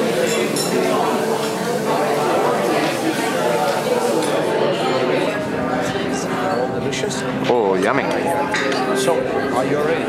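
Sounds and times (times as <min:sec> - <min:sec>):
glassware and cutlery clinking: 0:00.0 - 0:01.7, 0:07.8 - 0:09.2
dining room chatter: 0:00.0 - 0:10.0.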